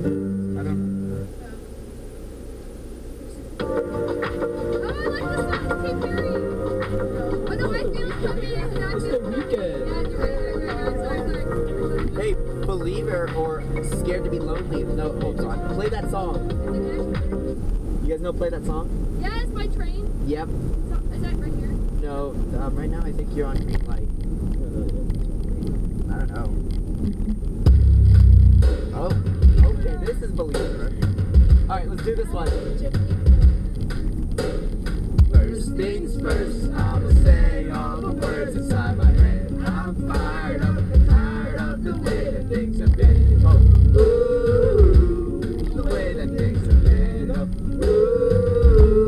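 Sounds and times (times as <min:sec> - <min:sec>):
low cabin rumble: 0:00.0 - 0:49.0
road noise: 0:00.0 - 0:49.0
karaoke backing music: 0:03.6 - 0:17.6, 0:27.0 - 0:49.0
faint passenger chatter: 0:04.4 - 0:27.6.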